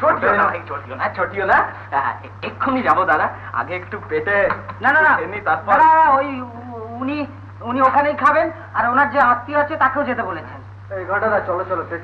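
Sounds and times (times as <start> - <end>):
man talking: 0.0 - 7.0.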